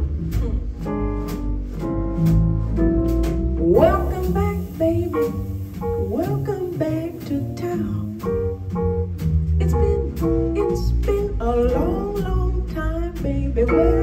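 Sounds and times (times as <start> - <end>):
drum kit: 0.0 - 14.0
grand piano: 0.0 - 14.0
upright double bass: 0.0 - 14.0
woman singing: 3.6 - 8.4, 9.6 - 14.0.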